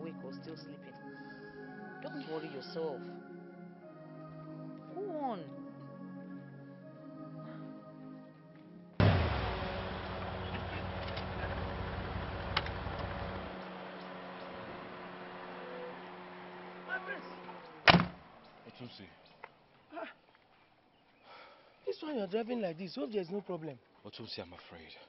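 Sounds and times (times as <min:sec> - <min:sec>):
car engine running: 0:09.0 - 0:18.6
car door slamming: 0:17.8 - 0:18.2.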